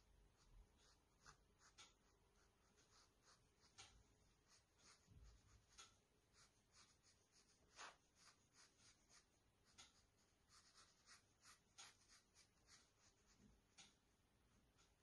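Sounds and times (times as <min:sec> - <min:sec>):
brush strokes on paper: 0:00.0 - 0:14.1.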